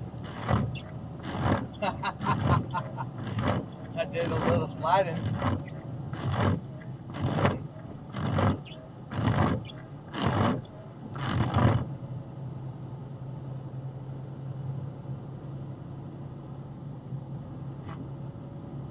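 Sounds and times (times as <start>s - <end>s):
low engine drone: 0.0s - 18.9s
windshield wipers swishing: 0.1s - 11.9s.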